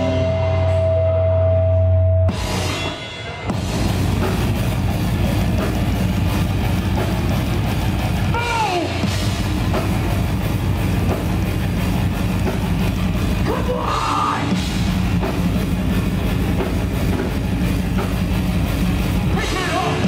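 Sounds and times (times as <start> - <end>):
heavy metal band playing: 0.0 - 20.0.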